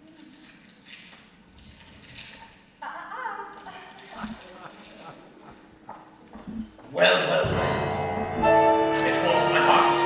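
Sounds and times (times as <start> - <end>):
footsteps on wooden stage: 5.8 - 7.0.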